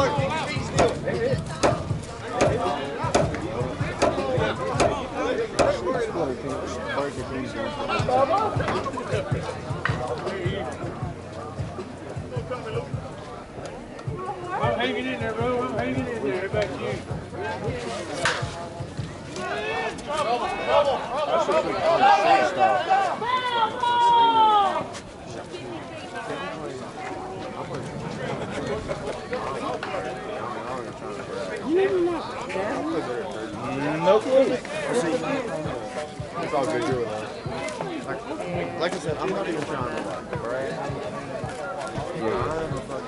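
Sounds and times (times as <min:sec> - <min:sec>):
voices talking: 0:00.0 - 0:43.0.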